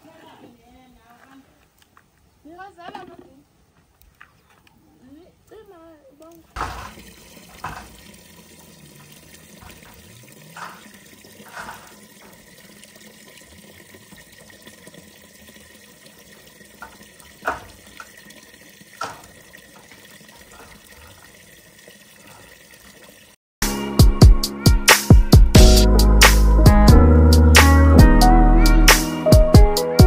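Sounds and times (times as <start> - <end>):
water running into a plastic bucket: 6.4 - 23.4.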